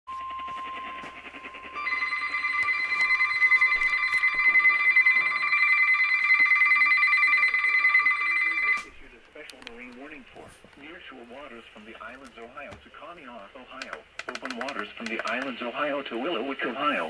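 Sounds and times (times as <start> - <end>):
rapidly pulsing electronic alarm: 0.1 - 8.9
steady alarm tone: 0.1 - 8.9.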